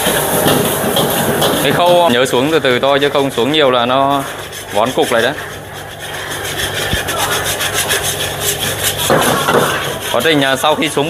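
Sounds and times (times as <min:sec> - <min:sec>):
wire whisk scraping a steel wok: 0:00.0 - 0:11.0.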